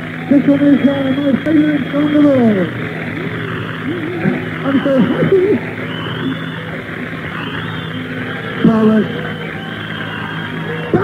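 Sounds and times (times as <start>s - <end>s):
crowd din: 0.0s - 11.0s
low steady hum: 0.0s - 11.0s
faint high wavering whistles: 0.1s - 11.0s.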